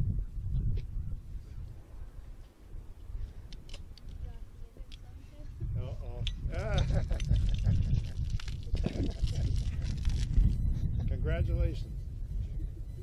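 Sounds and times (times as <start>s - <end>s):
wind on microphone: 0.0s - 13.0s.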